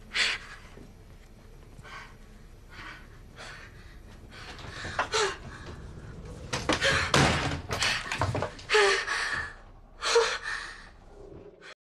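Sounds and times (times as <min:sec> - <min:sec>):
door slamming and banging: 0:06.4 - 0:08.6.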